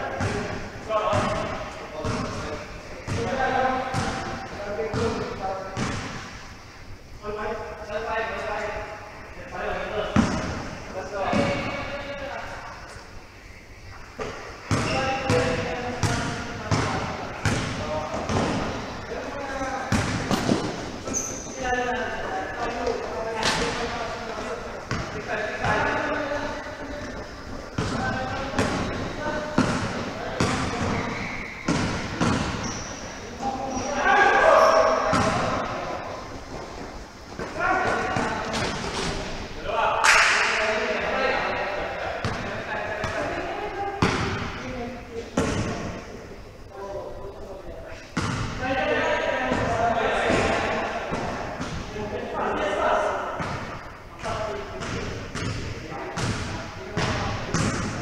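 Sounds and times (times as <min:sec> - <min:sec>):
basketball bouncing on court: 0:00.2 - 0:02.4, 0:03.0 - 0:06.2, 0:10.2 - 0:10.6, 0:14.7 - 0:18.8, 0:19.9 - 0:21.5, 0:27.8 - 0:33.0, 0:34.6 - 0:35.7, 0:44.0 - 0:44.6, 0:48.2 - 0:48.6, 0:54.8 - 0:58.0
players' voices calling: 0:07.0 - 0:58.0
basketball and feet thudding on court: 0:19.9 - 0:21.6.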